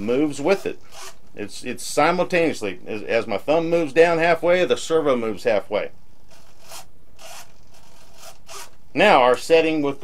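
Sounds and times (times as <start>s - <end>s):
servo whirring: 0.8s - 1.2s, 6.3s - 8.8s.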